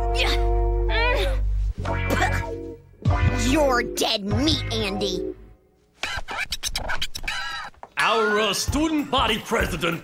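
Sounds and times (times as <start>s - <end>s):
cartoon scratchy scramble: 6.0s - 8.9s.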